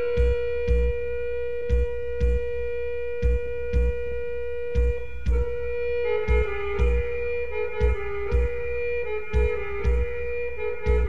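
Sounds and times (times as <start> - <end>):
drum beat low thumps: 0.0 - 11.0
wind instrument long note: 0.0 - 11.0.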